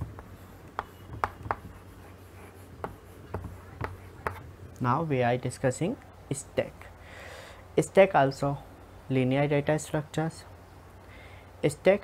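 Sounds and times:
chalk writing on blackboard: 0:00.0 - 0:04.4.

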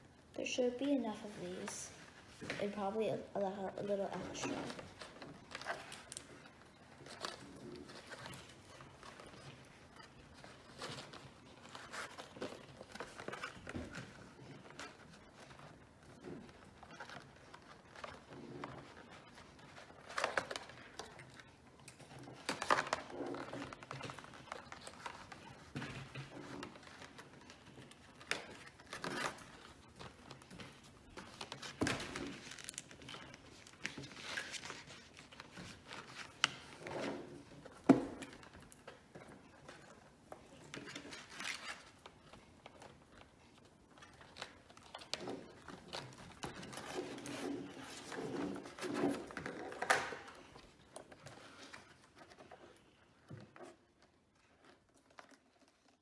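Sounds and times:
card and paper rustling: 0:00.4 - 0:56.0.

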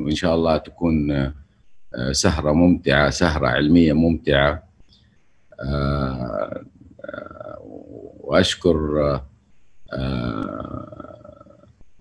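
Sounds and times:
man talking over video call: 0:00.0 - 0:01.4, 0:02.0 - 0:04.6, 0:05.6 - 0:09.2, 0:09.9 - 0:11.6.

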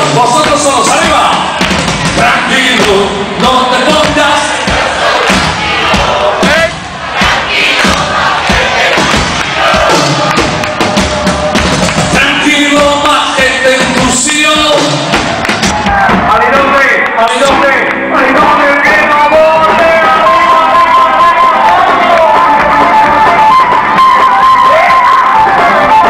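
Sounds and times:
crowd yelling and singing along: 0:00.0 - 0:26.0
live party band music: 0:00.0 - 0:26.0
person singing: 0:17.9 - 0:26.0.

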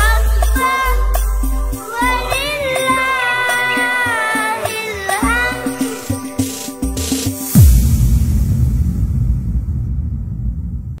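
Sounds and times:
deep low rumble: 0:07.6 - 0:11.0.

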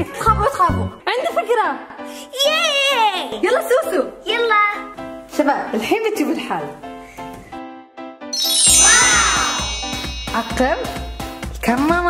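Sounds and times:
background music: 0:00.0 - 0:12.0
shimmering chime: 0:08.4 - 0:11.8.

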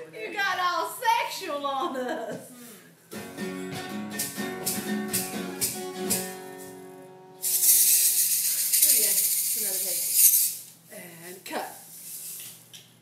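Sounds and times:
acoustic guitar strumming: 0:03.1 - 0:08.0
handheld shaker shaken fast: 0:07.4 - 0:10.7, 0:11.8 - 0:12.6.

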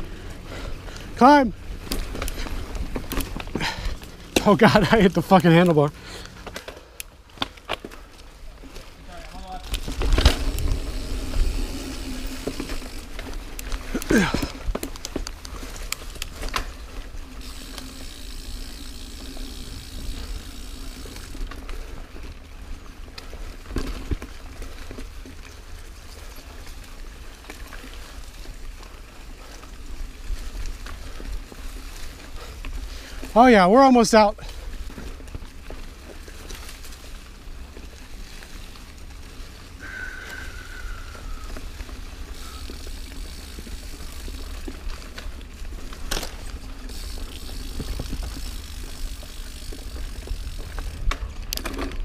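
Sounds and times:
bike rattling: 0:00.0 - 0:52.0
bike tyres rumbling on dirt: 0:00.0 - 0:52.0
bike knocking over bumps: 0:09.6 - 0:15.4.

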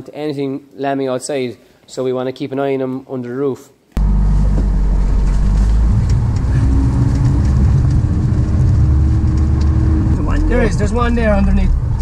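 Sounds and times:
car engine rumbling: 0:04.0 - 0:12.0.

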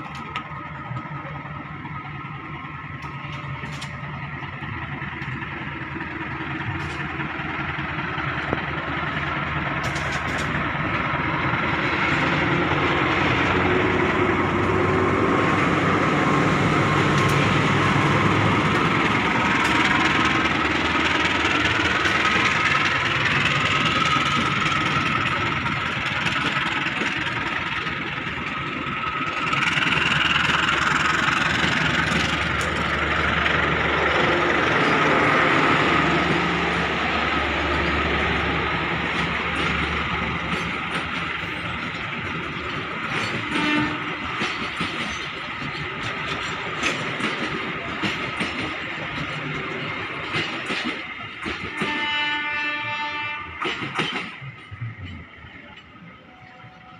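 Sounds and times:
coaches rolling on rails: 0:00.0 - 0:56.9
diesel locomotive engine: 0:00.0 - 0:56.9.

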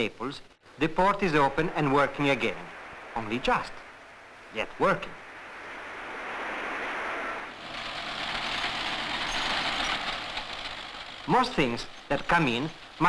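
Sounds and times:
rushing machinery noise: 0:01.3 - 0:13.0.

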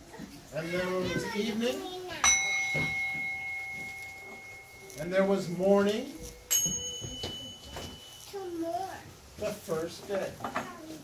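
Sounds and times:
small bell ringing: 0:02.2 - 0:09.0.

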